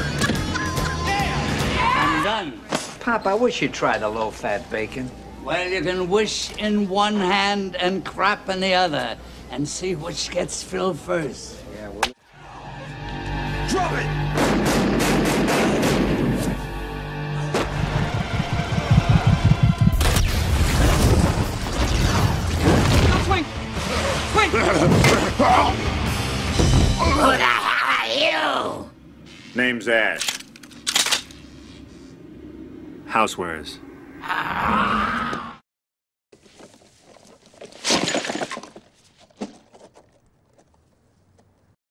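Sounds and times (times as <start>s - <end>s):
dramatic music score: 12.2s - 21.5s, 22.2s - 27.6s
loud blast: 14.2s - 16.4s
gunshots: 14.3s - 16.4s.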